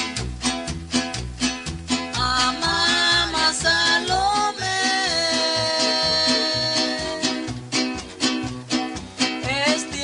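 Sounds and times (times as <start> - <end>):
instrumental backing with bass beat: 0.0 - 10.0
voices singing devotional song: 2.2 - 7.5.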